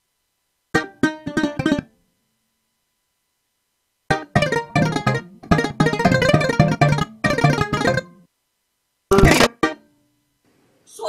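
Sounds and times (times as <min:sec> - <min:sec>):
plucked bouzouki chords: 0:00.7 - 0:01.9, 0:04.1 - 0:08.2, 0:09.1 - 0:10.0.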